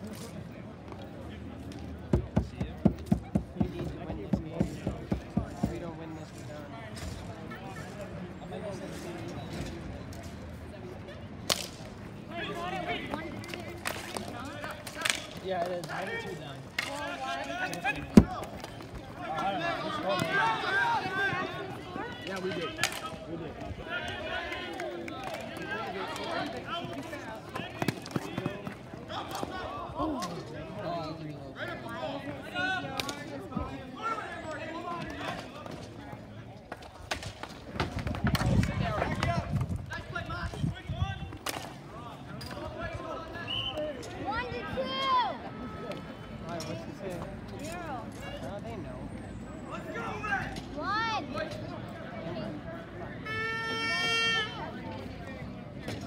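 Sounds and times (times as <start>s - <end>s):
hockey sticks clacking: 11.5s - 11.9s, 13.0s - 19.4s, 22.2s - 23.3s, 25.1s - 29.5s, 36.7s - 39.7s, 41.3s - 41.8s.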